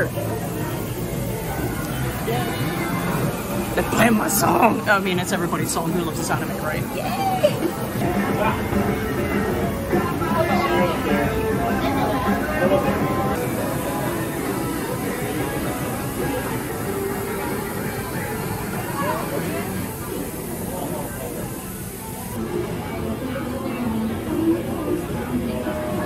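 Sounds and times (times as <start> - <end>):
hubbub of people talking: 0.0 - 26.0
music with singing over speakers: 7.1 - 18.8.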